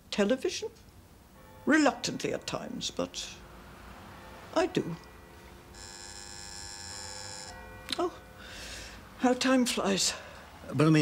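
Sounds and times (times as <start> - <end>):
electric buzzer: 5.7 - 7.6.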